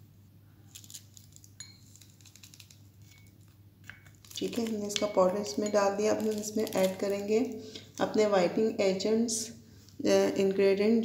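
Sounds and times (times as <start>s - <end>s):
sachet crinkling: 0.7s - 5.0s, 6.0s - 7.6s.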